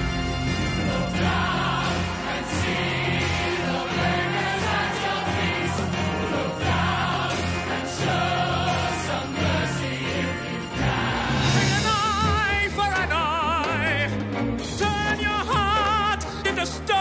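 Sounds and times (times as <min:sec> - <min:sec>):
choir singing: 0:00.0 - 0:12.5
orchestra with steady beat: 0:00.0 - 0:17.0.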